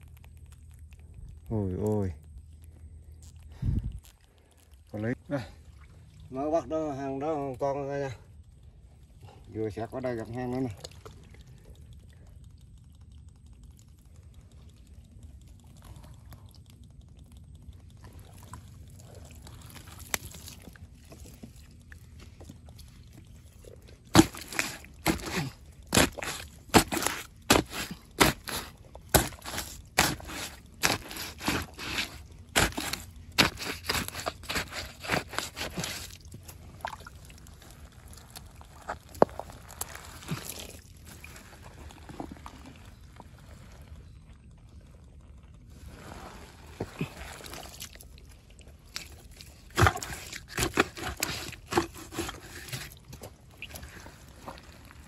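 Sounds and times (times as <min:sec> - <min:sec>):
wet squelches and slaps: 0:10.5 - 0:42.4, 0:46.7 - 0:55.0
hands digging in wet mud: 0:17.8 - 0:44.0, 0:45.6 - 0:55.0
scraping in mud: 0:18.0 - 0:55.0.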